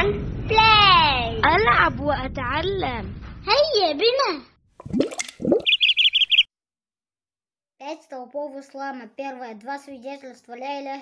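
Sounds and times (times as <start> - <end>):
short high chirps: 5.4 - 6.5.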